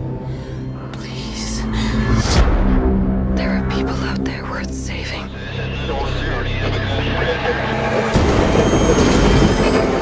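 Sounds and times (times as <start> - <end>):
low steady drone: 0.0 - 10.0.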